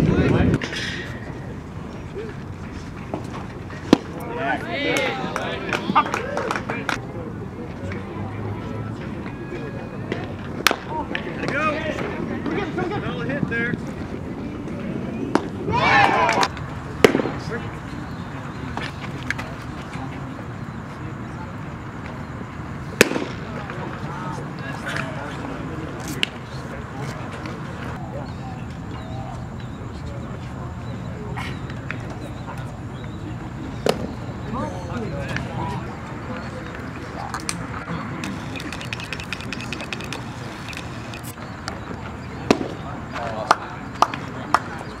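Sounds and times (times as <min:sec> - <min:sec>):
crowd chatter: 0:00.0 - 0:45.0
sharp crack: 0:16.4 - 0:17.5, 0:23.0 - 0:23.5.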